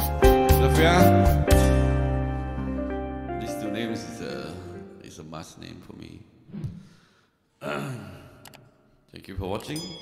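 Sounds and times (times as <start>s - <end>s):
man sighing: 6.9s - 8.6s.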